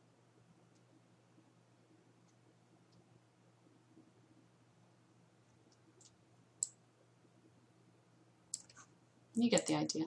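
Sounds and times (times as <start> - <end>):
faint low hum: 0.0 - 10.0
computer mouse clicking: 2.2 - 3.1, 5.7 - 6.8, 8.5 - 8.9.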